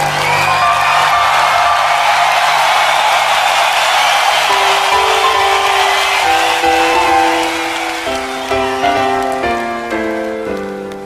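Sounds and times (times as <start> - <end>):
hammond organ notes: 4.4 - 10.0.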